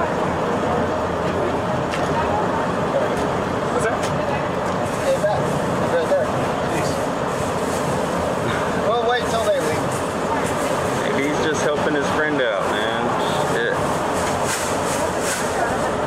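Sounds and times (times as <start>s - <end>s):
distant voices talking: 0.0s - 16.0s
street traffic noise: 0.0s - 16.0s.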